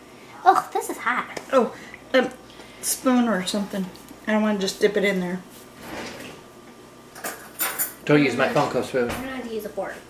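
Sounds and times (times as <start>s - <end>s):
metal cutlery clinking: 7.2s - 8.0s.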